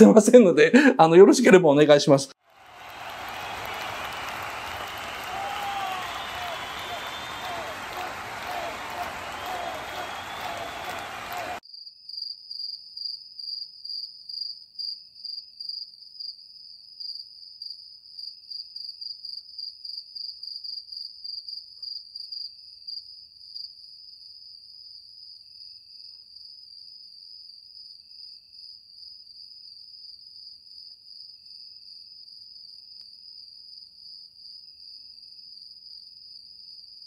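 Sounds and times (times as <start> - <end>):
dense applause-like noise: 2.4 - 11.6
crickets chirping: 4.2 - 11.3.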